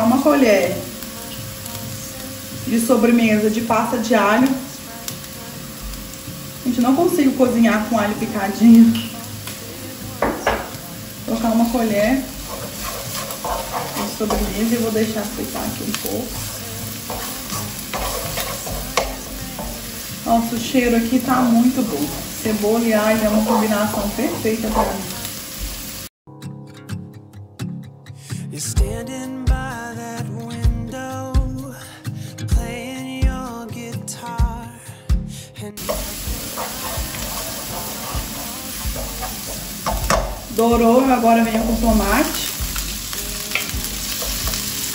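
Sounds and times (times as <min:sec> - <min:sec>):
background music: 0:00.0 - 0:25.4, 0:26.3 - 0:44.9
onion sizzling in oil: 0:00.0 - 0:26.1, 0:35.8 - 0:44.9
spoon knocking on pan: 0:10.2 - 0:10.8, 0:12.3 - 0:20.0, 0:23.2 - 0:25.1, 0:35.8 - 0:44.8.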